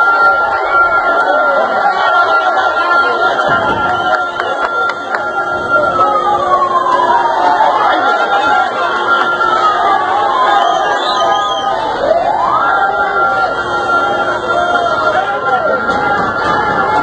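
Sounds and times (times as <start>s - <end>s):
crowd raised voices: 0.0s - 17.0s
siren wailing: 0.0s - 17.0s.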